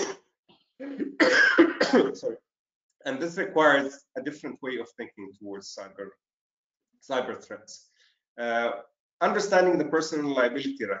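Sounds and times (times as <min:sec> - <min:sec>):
man coughing: 0:01.0 - 0:02.3.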